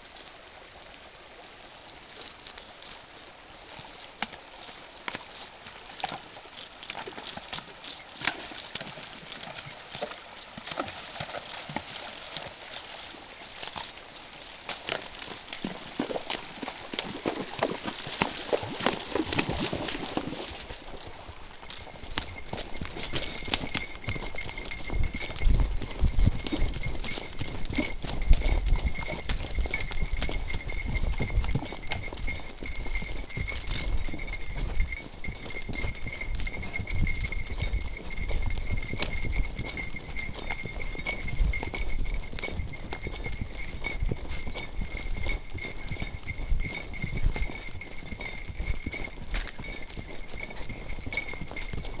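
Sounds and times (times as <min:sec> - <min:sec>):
horse hoofbeats on gravel: 0:02.1 - 0:52.0.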